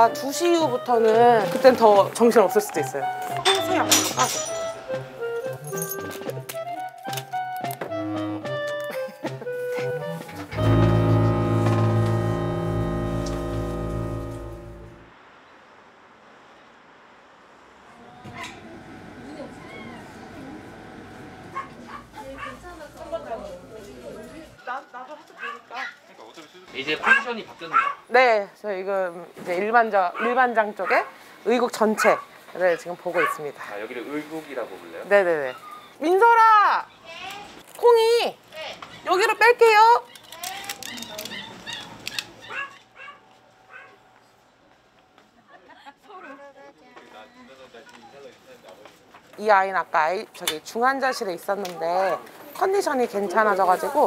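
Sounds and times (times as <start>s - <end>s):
indistinct staff chatter: 18.2s - 26.8s
dogs vocalizing: 35.4s - 36.0s.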